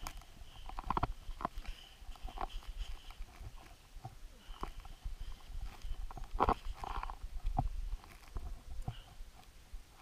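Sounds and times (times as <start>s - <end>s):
crunches of snow: 0.0s - 10.0s.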